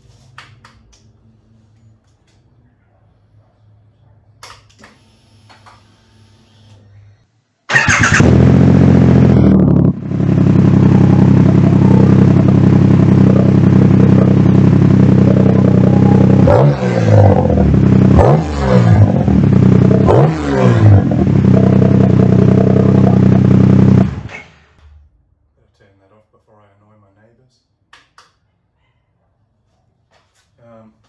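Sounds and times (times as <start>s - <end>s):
motorcycle engine idling loudly: 7.7s - 24.3s
low hum: 8.2s - 25.2s.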